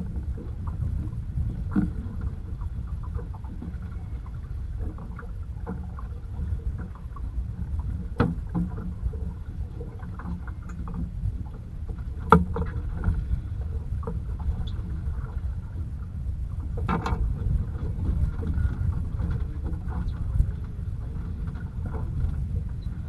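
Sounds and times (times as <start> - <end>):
low rumble of water and wind: 0.0 - 23.0
sharp knocks on boat: 1.7 - 3.9, 4.8 - 9.3, 11.9 - 13.2, 16.8 - 20.8.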